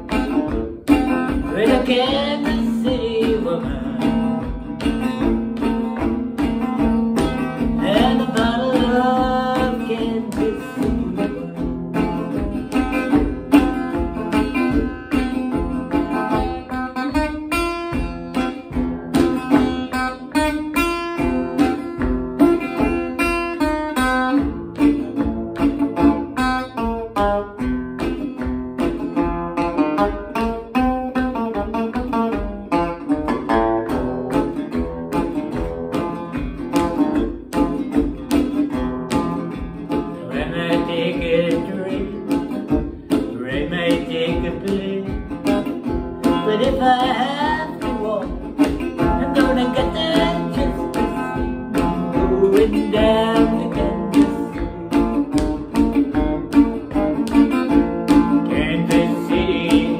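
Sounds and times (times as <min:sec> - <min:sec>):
resonator guitar blues: 0:00.0 - 0:59.9.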